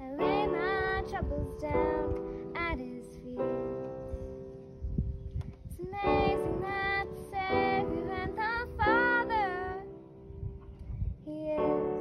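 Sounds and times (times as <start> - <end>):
girl singing slow song: 0.0 - 4.5, 5.6 - 12.0
electronic keyboard chords: 0.0 - 12.0.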